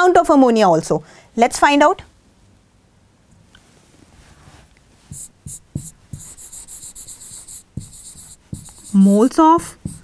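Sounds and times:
chalk scratching on chalkboard: 5.1s - 10.0s
chalk tapping on board: 5.1s - 10.0s.

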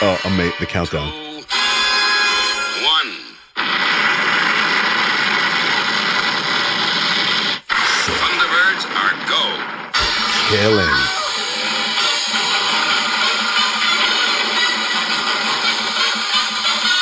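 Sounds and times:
tv theme music from phone speaker: 0.0s - 4.2s, 7.7s - 17.0s
rocket launch roar: 3.6s - 15.6s.

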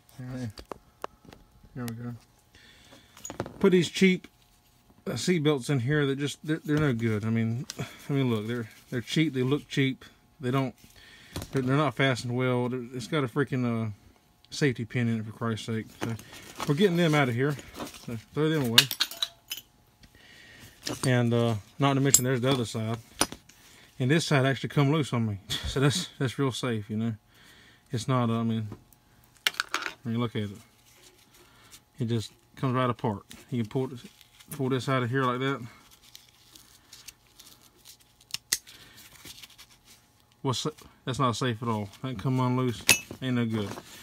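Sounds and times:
faint rustling of webbing: 33.2s - 40.8s.

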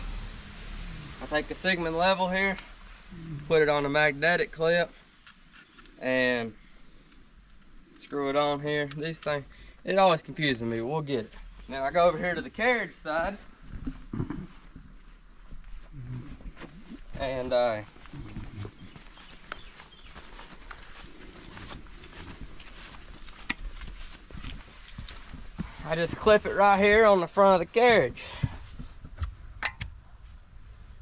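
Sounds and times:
footsteps on wet muddy ground: 13.2s - 27.4s.

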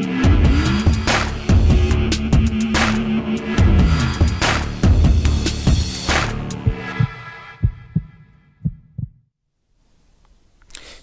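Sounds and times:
electronic theme music: 0.0s - 8.5s
deep bass thumps: 3.6s - 9.3s.

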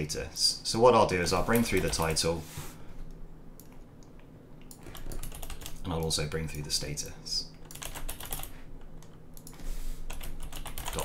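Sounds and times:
typing on computer keyboard: 4.7s - 5.8s, 7.6s - 11.0s.

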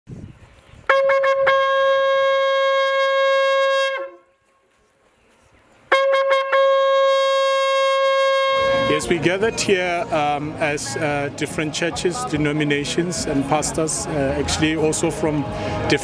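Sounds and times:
shofar blasts: 0.9s - 4.4s, 5.9s - 9.1s.

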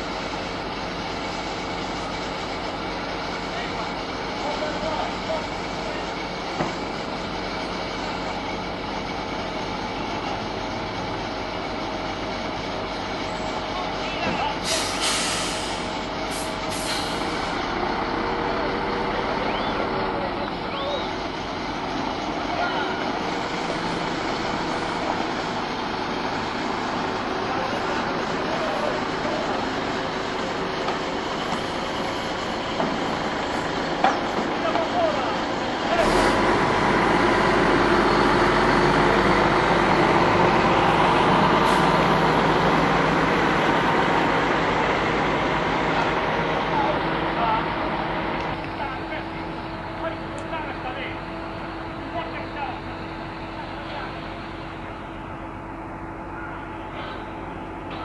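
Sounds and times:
heavy diesel engine running: 0.0s - 58.0s
air release hisses: 14.6s - 17.4s.

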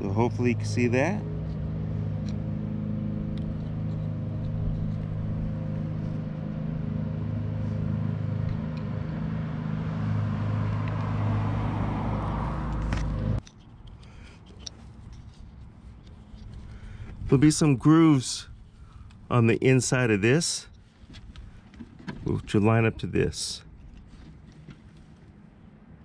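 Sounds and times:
vehicle engine idling: 0.0s - 25.4s
traffic noise: 0.0s - 26.0s
handling rustle: 12.7s - 17.5s, 20.7s - 22.6s, 23.7s - 25.4s.

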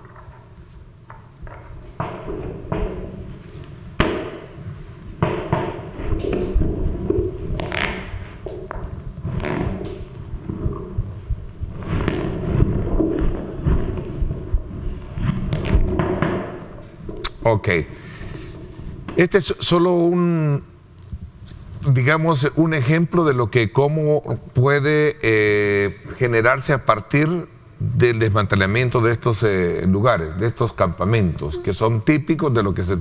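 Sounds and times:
rumbling crackling noise: 0.0s - 19.4s
sharp knocks and thuds: 1.1s - 3.4s, 4.0s - 4.6s, 5.2s - 8.9s.

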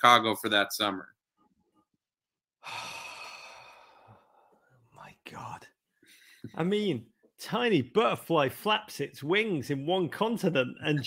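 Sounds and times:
man sighing: 2.6s - 4.5s.

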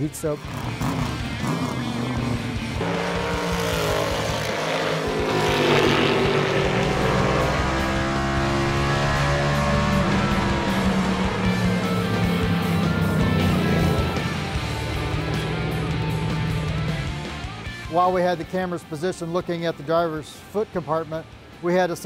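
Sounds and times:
background music: 0.0s - 22.0s
race car engine passing: 0.4s - 18.1s.

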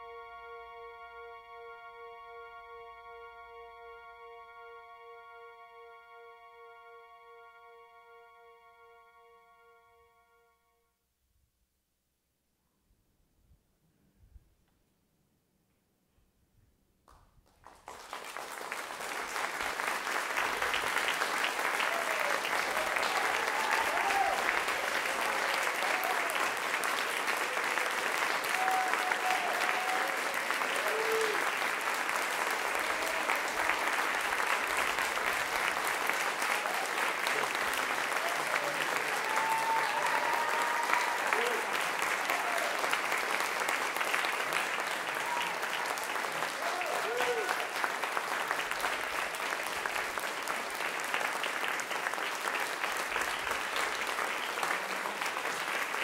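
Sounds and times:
audience applauding: 17.1s - 56.0s.

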